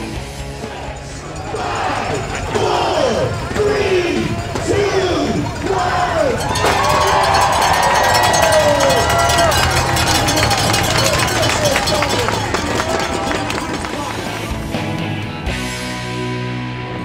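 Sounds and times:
spectators cheering and shouting: 0.0s - 15.6s
bicycle freewheels ticking: 1.2s - 13.4s.

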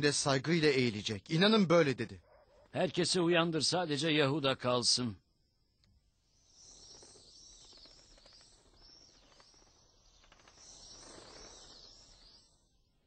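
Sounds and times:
small birds chirping: 5.4s - 12.9s.

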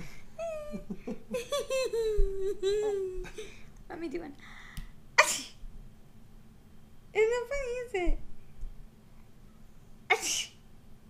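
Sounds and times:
person sneezing: 5.2s - 5.6s, 10.1s - 10.6s.

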